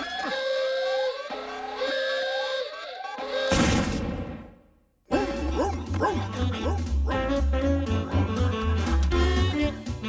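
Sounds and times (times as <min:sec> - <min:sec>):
cartoon music with whistle glides: 0:00.0 - 0:03.5, 0:06.2 - 0:10.0.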